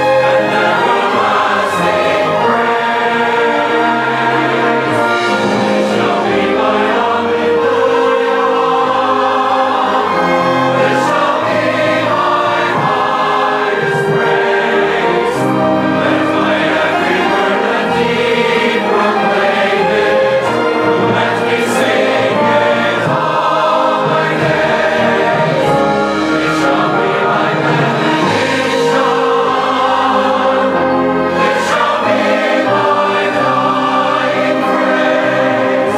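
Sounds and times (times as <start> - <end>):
choir singing an anthem: 0.0 - 35.9
orchestral accompaniment: 0.0 - 35.9.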